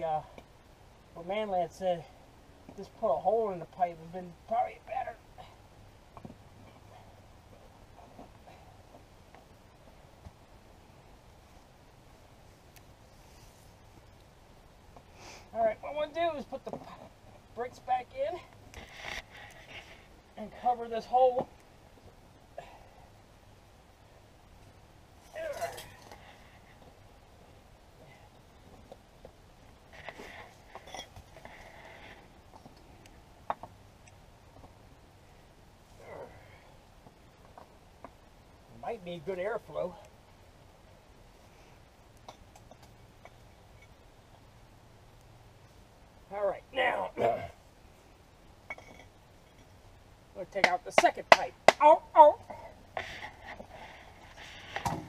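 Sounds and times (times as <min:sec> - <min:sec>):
faint clink of hard objects: 0:30.7 - 0:31.6, 0:48.6 - 0:49.8.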